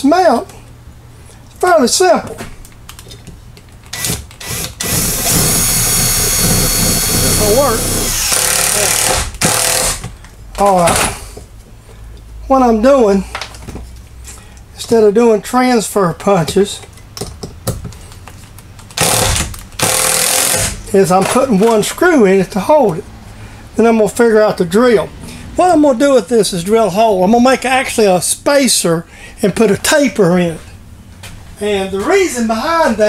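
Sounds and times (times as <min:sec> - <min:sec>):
impact driver hammering: 0:03.9 - 0:10.2, 0:19.0 - 0:20.8.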